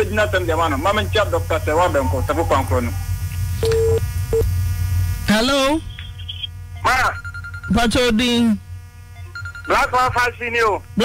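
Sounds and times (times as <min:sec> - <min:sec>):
low mains hum: 0:00.0 - 0:11.0
telephone line beeps: 0:03.6 - 0:04.5, 0:06.8 - 0:07.9, 0:09.2 - 0:09.8.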